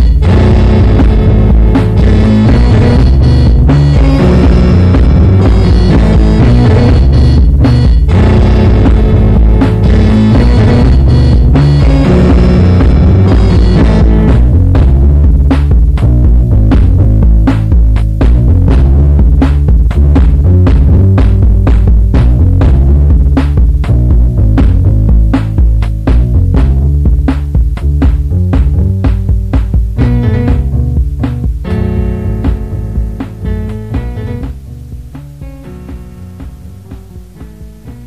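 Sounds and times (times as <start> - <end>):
sustained electronic tones: 0.0 - 15.3
drum machine hits: 0.0 - 38.0
heavy bass line: 0.0 - 38.0.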